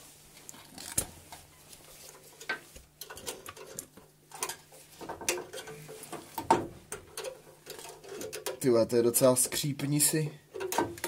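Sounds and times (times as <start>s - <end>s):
metallic clicks and scrapes: 2.0s - 8.7s.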